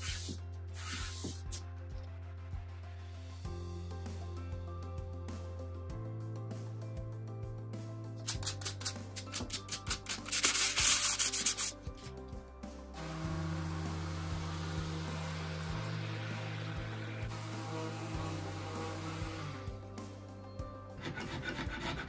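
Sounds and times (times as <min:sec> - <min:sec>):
hand sanding wood: 0:00.0 - 0:01.6, 0:09.2 - 0:11.8, 0:21.0 - 0:22.0
electric orbital sander running: 0:13.0 - 0:19.7.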